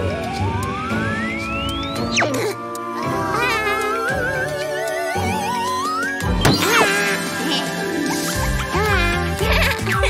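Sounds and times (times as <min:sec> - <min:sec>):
background music: 0:00.0 - 0:10.0
falling cartoon whistle: 0:00.2 - 0:02.4.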